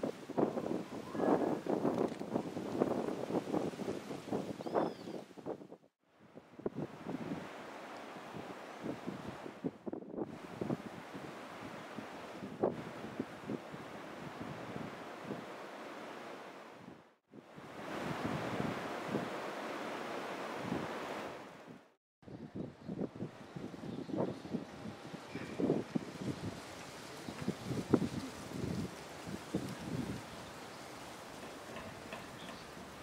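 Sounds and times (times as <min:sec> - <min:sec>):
wind on microphone: 0:00.0 - 0:15.6, 0:16.8 - 0:33.0.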